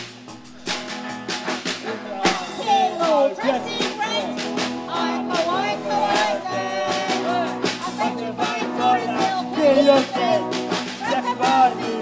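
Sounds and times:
drum hits: 0.0 - 12.0
live band held chord: 0.0 - 12.0.

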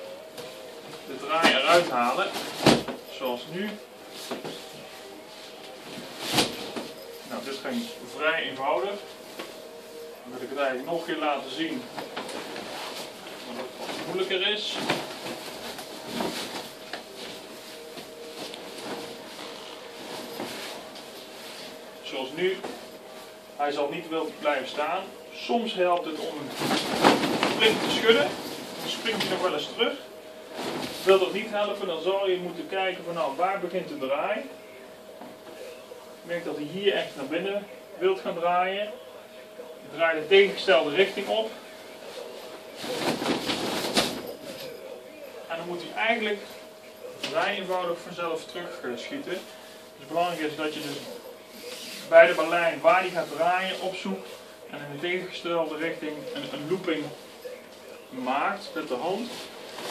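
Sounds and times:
fabric rustling: 0.1 - 34.2, 40.2 - 59.9.

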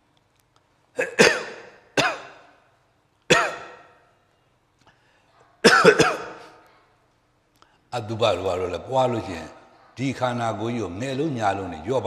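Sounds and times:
man coughing: 1.0 - 2.5, 3.3 - 4.0, 5.6 - 6.6.

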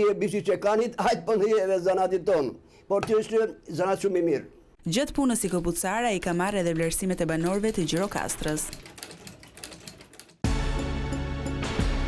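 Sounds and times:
sewing machine stitching leather: 7.5 - 10.4.

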